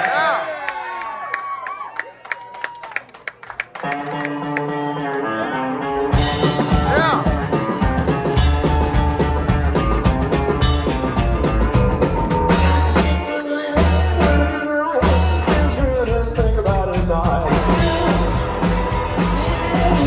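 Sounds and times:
electric guitar: 3.8 - 20.0
drum kit: 5.9 - 20.0
slapped upright bass: 6.2 - 13.2, 13.8 - 20.0.

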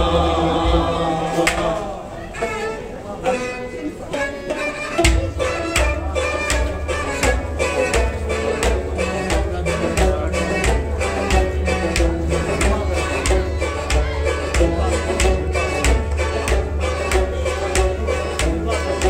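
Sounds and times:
hand drum deep beat: 0.0 - 1.7, 5.0 - 19.0
sufi music ensemble: 0.0 - 19.0.

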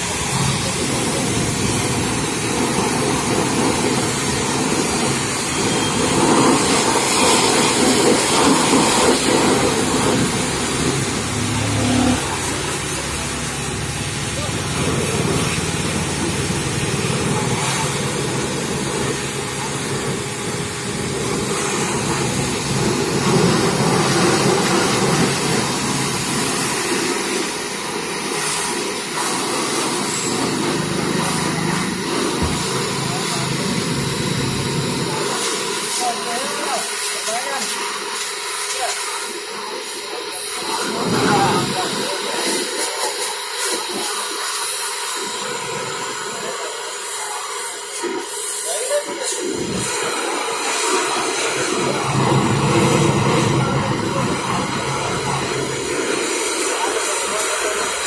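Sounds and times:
pressure washer jet hissing: 0.0 - 58.0.

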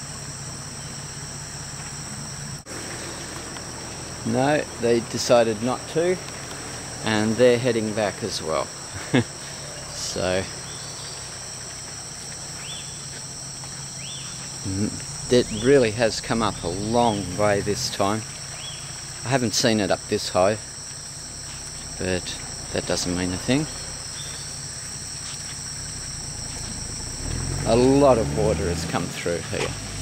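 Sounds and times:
low steady rumble: 0.0 - 29.1
insects chirring: 0.0 - 30.0
low steady hum: 0.0 - 30.0
short rising-and-falling chirps: 12.6 - 28.4.

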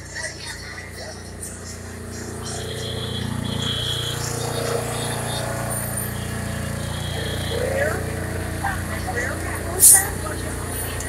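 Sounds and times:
faint voices: 0.0 - 11.0
low rumble of traffic: 0.0 - 11.0
thin high tone: 0.8 - 11.0.

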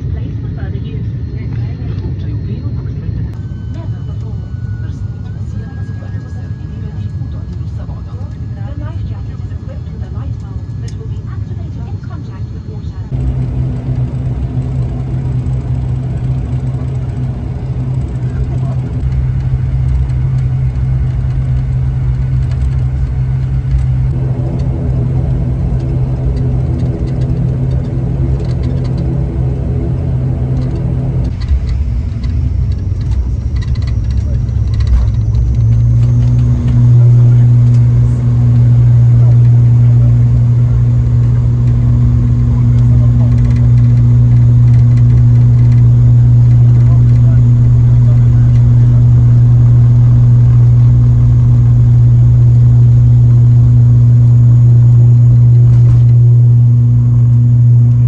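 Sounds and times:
turboprop engine drone in cabin: 0.0 - 58.0.

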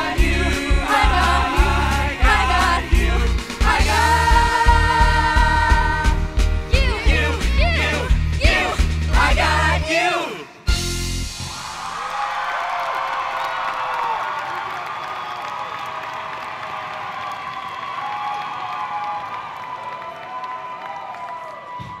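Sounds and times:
audience cheering and applauding: 11.4 - 22.0.

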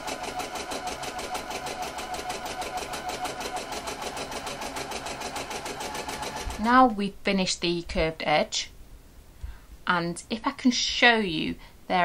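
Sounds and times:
electric sewing machine running: 0.0 - 6.7.

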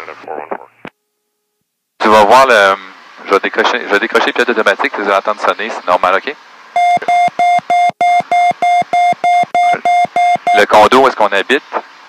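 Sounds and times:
rapid high beeps: 6.8 - 10.8.

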